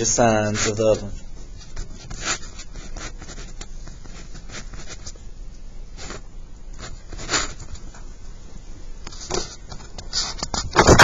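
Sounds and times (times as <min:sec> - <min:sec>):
pen scratching on paper: 0:01.6 - 0:05.2.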